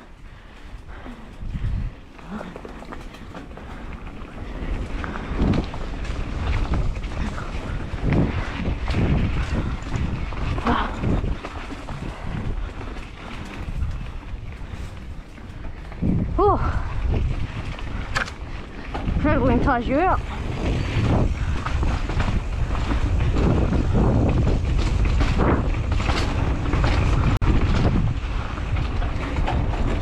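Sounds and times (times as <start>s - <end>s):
bike tyres rolling over dirt: 0.0s - 30.0s
wind on microphone: 0.0s - 30.0s
bike knocks and rattles: 1.5s - 30.0s.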